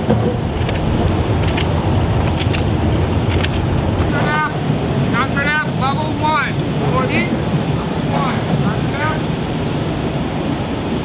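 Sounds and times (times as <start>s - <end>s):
people talking: 4.1s - 9.3s.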